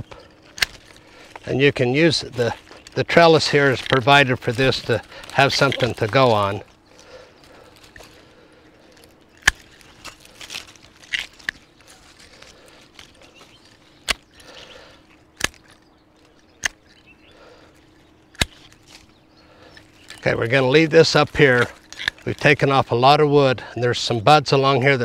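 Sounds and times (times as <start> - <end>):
pruning shears snipping: 0.0 - 23.0
leafy canes rustling: 0.0 - 25.0.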